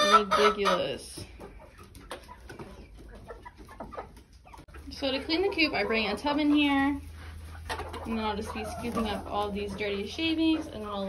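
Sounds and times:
hens clucking softly: 0:00.0 - 0:11.0.

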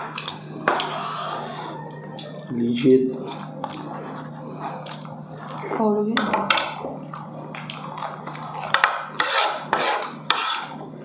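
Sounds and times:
utensils scraping on plates: 0:00.0 - 0:02.3, 0:08.1 - 0:10.9.

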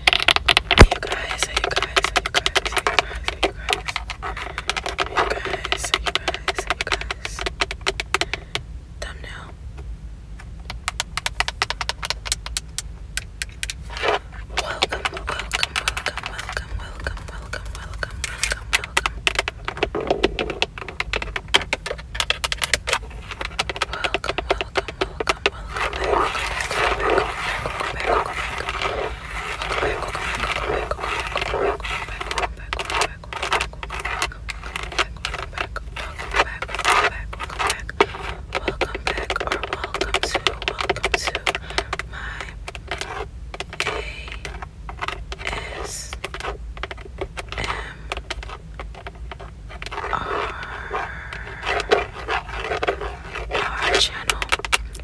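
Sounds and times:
fingernails tapping steering wheel: 0:00.0 - 0:08.6, 0:10.4 - 0:55.0
scratching and rubbing on leather: 0:00.0 - 0:08.6, 0:10.6 - 0:55.0.

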